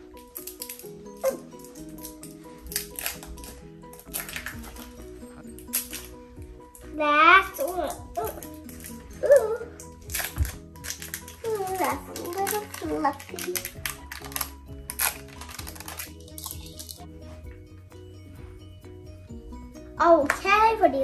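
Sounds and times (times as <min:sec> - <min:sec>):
background music: 0:00.0 - 0:21.0
plastic wrapper crinkling: 0:00.2 - 0:06.9, 0:07.5 - 0:17.1.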